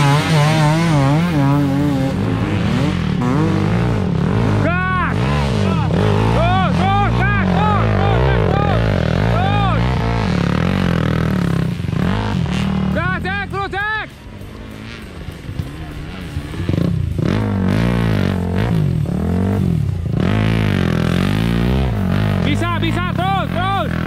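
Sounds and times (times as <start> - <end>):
motorcycle engine revving hard: 0.0 - 24.0.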